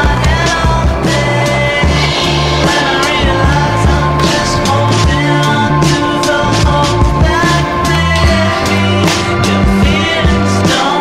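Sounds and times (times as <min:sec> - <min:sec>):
rock music: 0:00.0 - 0:11.0
skateboard wheels rolling on concrete: 0:00.0 - 0:11.0.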